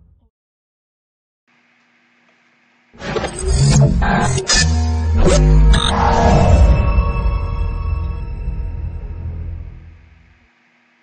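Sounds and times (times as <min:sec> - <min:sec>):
dramatic intro music: 0:03.3 - 0:10.2.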